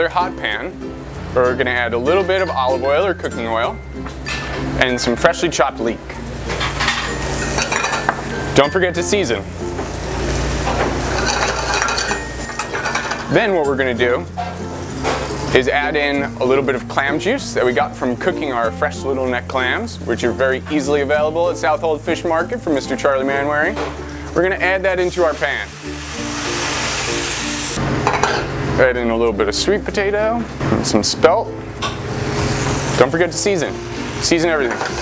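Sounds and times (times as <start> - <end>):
leeks sizzling in hot oil: 0.0 - 28.8, 29.6 - 35.0
background music: 0.0 - 35.0.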